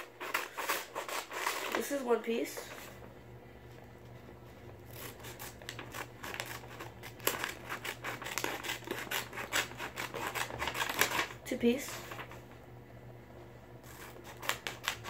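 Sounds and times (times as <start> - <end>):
scissors cutting paper: 0.0 - 2.8, 4.9 - 12.3, 13.8 - 15.0.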